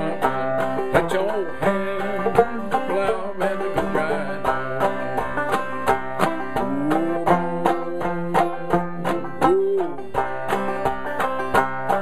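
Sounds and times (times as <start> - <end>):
clawhammer banjo playing: 0.0 - 12.0.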